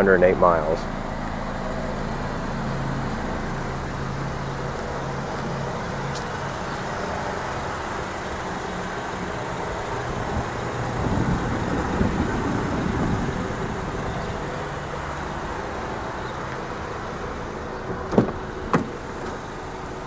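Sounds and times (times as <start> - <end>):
motor vehicle engine hum: 0.0 - 20.0.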